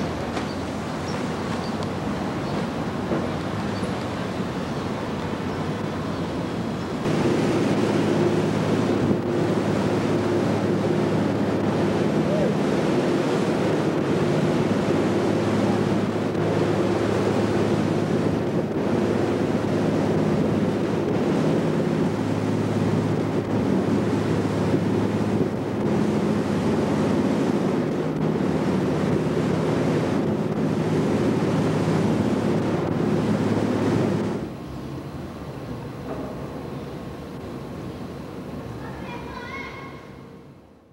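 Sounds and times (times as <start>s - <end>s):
wind buffeting microphone: 0.0s - 35.4s
low engine hum: 0.0s - 38.9s
rushing water: 0.0s - 39.7s.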